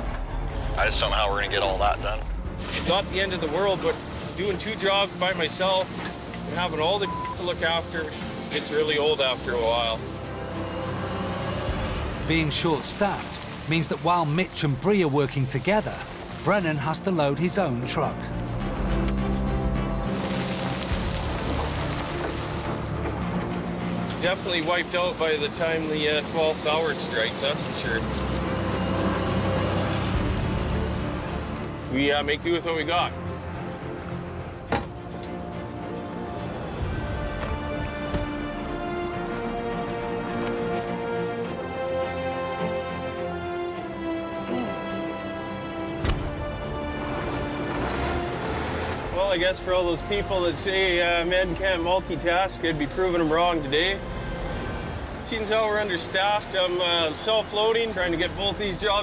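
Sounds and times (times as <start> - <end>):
background music: 0.0 - 59.0
truck engine rumbling: 0.0 - 59.0
gravel pouring into truck bed: 20.0 - 22.8, 24.1 - 28.4.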